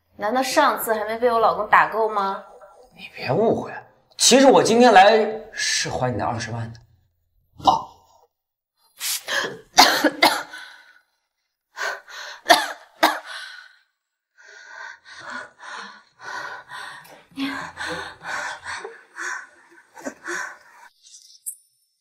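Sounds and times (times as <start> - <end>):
person gasping and huffing: 14.5 - 20.9.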